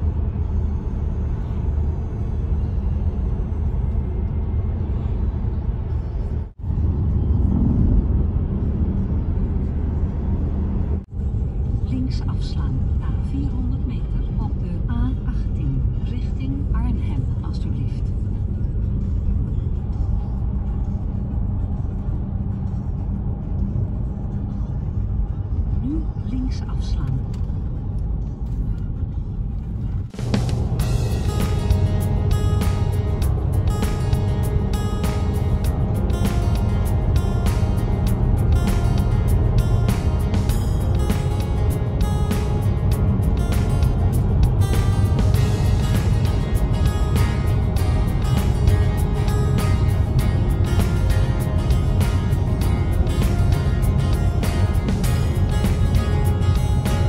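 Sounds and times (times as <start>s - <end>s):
car cabin road rumble: 0.0s - 57.0s
music with steady beat: 30.1s - 57.0s.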